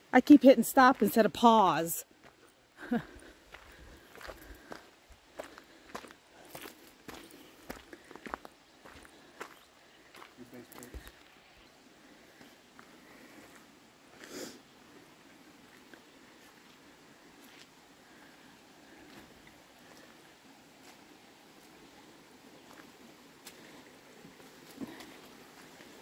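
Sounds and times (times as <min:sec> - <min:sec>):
footsteps on gravel: 0:03.5 - 0:11.4.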